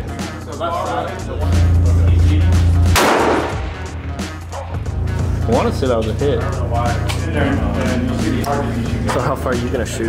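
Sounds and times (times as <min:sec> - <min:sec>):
background music with heavy bass: 0:00.0 - 0:10.0
rifle shot: 0:03.0 - 0:04.0.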